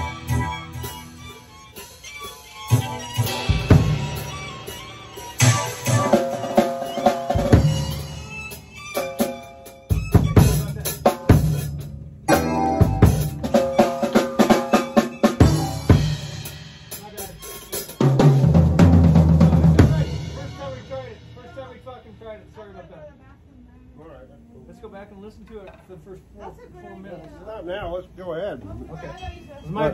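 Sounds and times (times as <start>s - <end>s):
held keyboard chords: 0.0s - 21.0s
drum kit fills: 0.0s - 22.5s
low bass notes: 10.2s - 13.8s.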